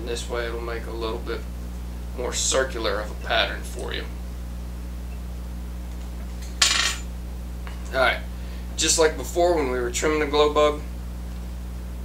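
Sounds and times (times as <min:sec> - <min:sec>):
steady low hum: 0:00.0 - 0:12.0
metal tool clinking on hard surface: 0:06.6 - 0:07.1.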